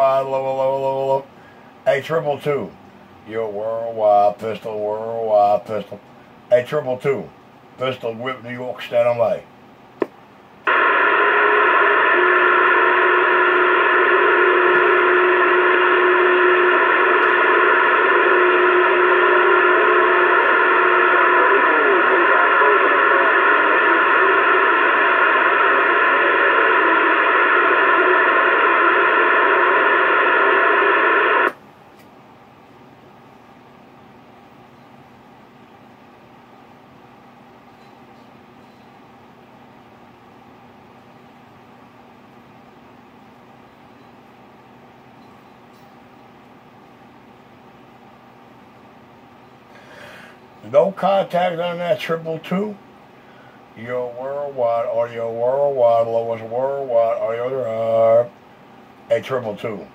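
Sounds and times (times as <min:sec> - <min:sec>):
radio static: 0:10.7 - 0:31.6, 0:53.8 - 0:58.3.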